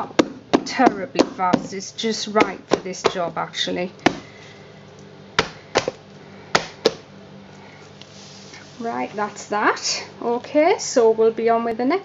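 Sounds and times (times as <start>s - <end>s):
faint steady hum: 0.0s - 12.0s
hard objects knocking together: 5.4s - 6.0s, 6.6s - 7.1s.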